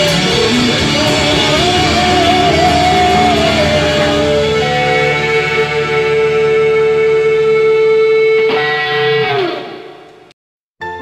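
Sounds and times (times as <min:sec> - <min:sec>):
strummed guitar chord: 0:00.0 - 0:09.9
guitar note sliding down: 0:00.0 - 0:10.2.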